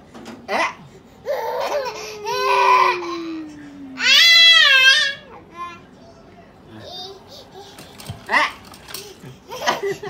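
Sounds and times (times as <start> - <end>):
baby and adult laughing: 9.1 - 10.0.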